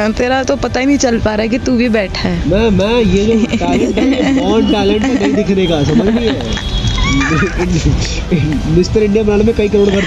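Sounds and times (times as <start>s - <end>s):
indistinct voices talking: 0.0s - 10.0s.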